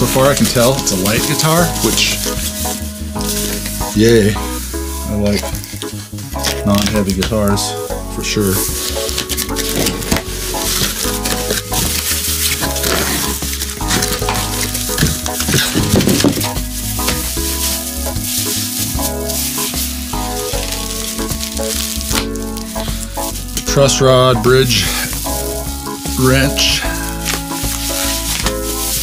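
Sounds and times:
background music: 0.0s - 29.0s
cardboard and wrapping crinkling: 0.0s - 29.0s.

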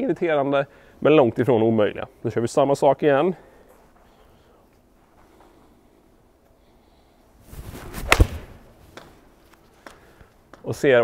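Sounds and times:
golf club swishing: 7.4s - 9.2s
golf club striking mat: 7.8s - 9.2s.

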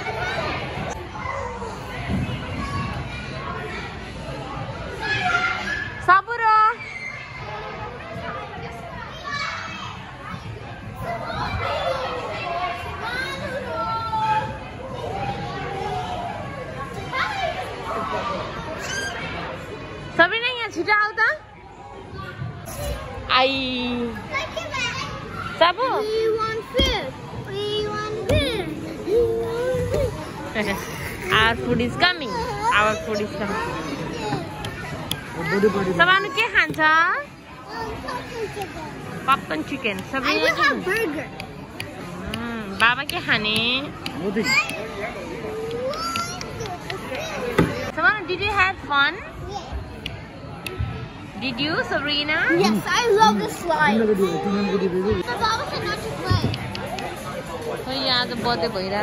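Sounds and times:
children chattering: 0.0s - 6.0s, 6.7s - 20.1s, 24.0s - 59.0s
indoor play hall background noise: 0.0s - 59.0s.

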